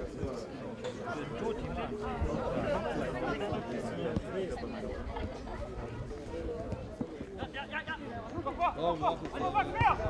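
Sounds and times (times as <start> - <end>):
chatter of several voices: 0.0 - 10.0
players and spectators calling out: 0.9 - 10.0.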